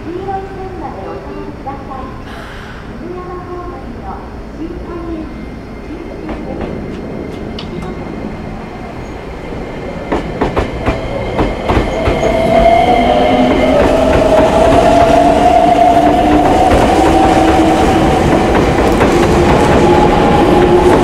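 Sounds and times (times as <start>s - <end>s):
train running rumble: 0.0s - 21.0s
train wheels clicking over rail joints: 10.0s - 21.0s.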